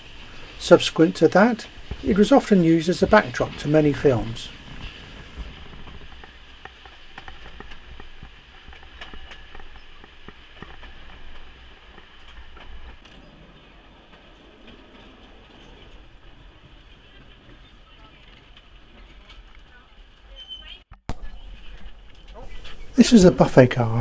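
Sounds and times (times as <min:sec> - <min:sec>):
train rumbling: 0:00.0 - 0:24.0
wheels clacking on rails: 0:00.0 - 0:24.0.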